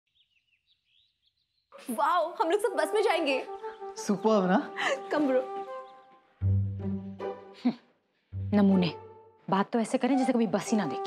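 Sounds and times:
faint birds chirping: 0.1s - 9.0s
woman's voice: 1.8s - 3.5s, 8.5s - 11.0s.

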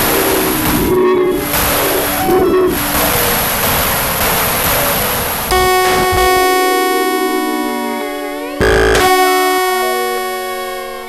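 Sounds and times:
sustained synthesizer chords: 5.5s - 11.0s.

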